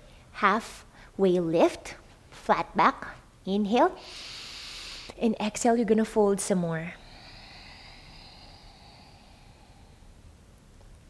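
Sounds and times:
woman exhaling: 0:06.8 - 0:10.4.

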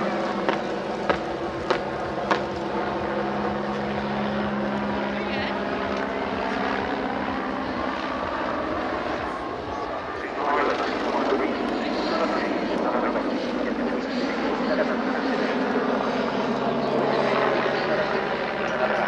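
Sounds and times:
helicopter flying: 0:00.0 - 0:19.0.

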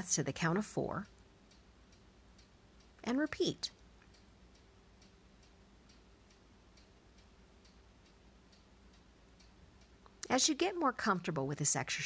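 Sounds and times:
faint low hum: 0:00.0 - 0:12.0
faint even ticking: 0:00.4 - 0:11.4.

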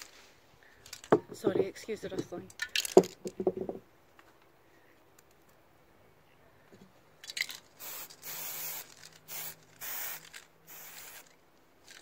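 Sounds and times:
spray can hissing: 0:07.8 - 0:11.3.

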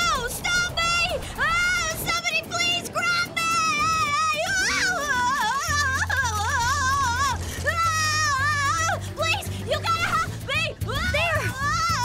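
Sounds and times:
cartoon background music: 0:00.0 - 0:12.0
high-pitched wordless cries: 0:00.0 - 0:12.0.

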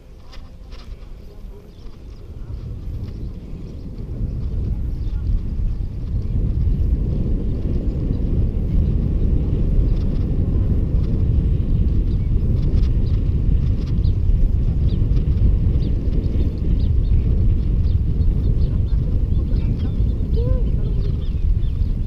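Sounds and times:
wind rushing over microphone: 0:00.0 - 0:22.0.

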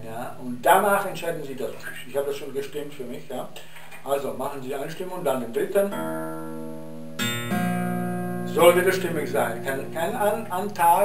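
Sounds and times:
classical guitar notes plucked: 0:05.9 - 0:11.0.

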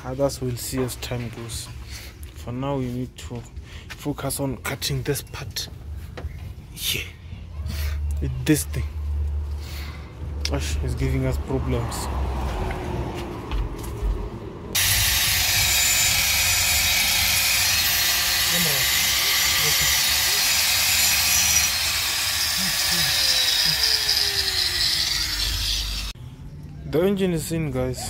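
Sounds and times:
angle grinder cutting metal: 0:14.8 - 0:26.2.

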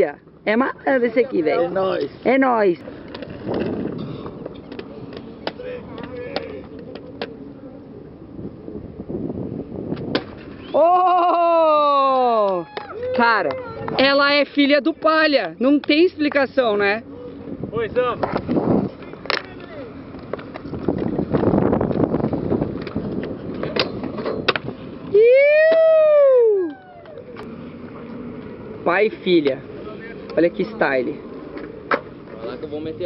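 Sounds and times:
inline skates grinding on concrete: 0:01.0 - 0:08.0, 0:09.5 - 0:10.8, 0:12.9 - 0:25.2, 0:27.2 - 0:33.0
skates striking concrete clicks: 0:02.8 - 0:07.4, 0:09.9 - 0:10.7, 0:12.5 - 0:16.4, 0:18.1 - 0:24.8, 0:31.5 - 0:32.4
wind buffeting microphone: 0:02.8 - 0:15.4, 0:16.6 - 0:33.0.

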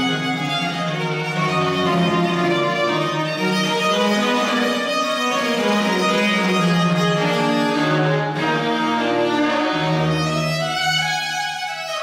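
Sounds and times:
cello bowing sustained notes: 0:00.0 - 0:12.0.

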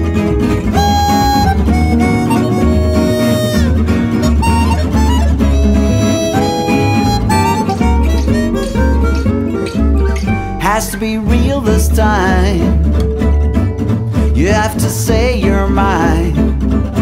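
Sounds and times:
chromatic harmonica melody: 0:00.0 - 0:11.0
acoustic rhythm guitar: 0:00.0 - 0:17.0
double bass pulse: 0:00.0 - 0:17.0.

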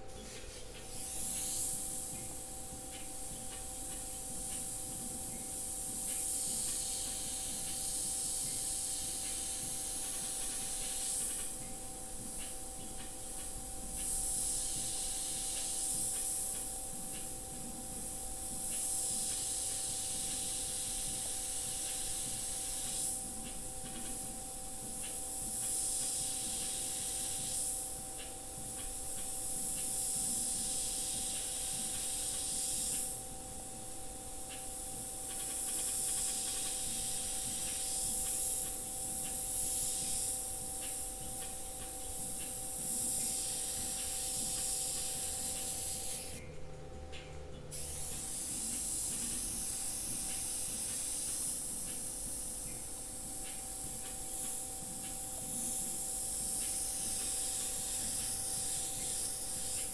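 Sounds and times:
airbrush air hiss: 0:00.0 - 0:46.4, 0:47.7 - 0:59.9.

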